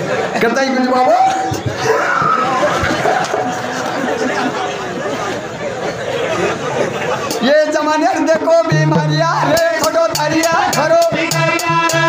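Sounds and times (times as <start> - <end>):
men chattering: 0.0 - 12.0.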